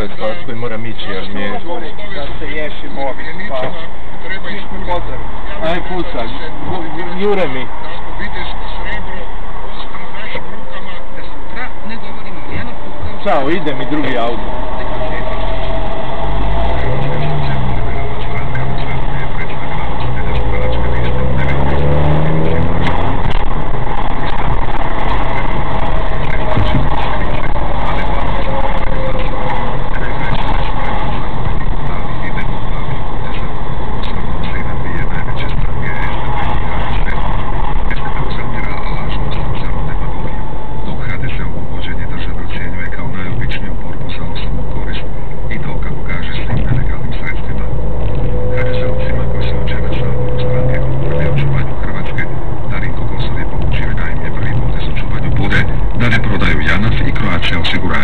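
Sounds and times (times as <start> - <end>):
car engine accelerating: 0.0 - 58.0
road noise: 0.0 - 58.0.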